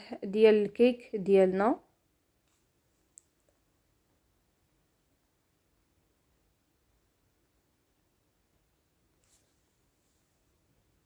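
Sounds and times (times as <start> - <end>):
faint click: 2.4 - 3.6.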